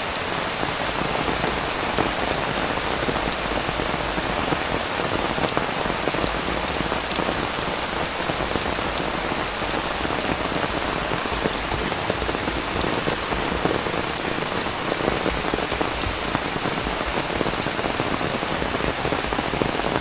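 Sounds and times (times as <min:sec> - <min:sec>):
heavy rain on foliage and pavement: 0:00.0 - 0:20.0.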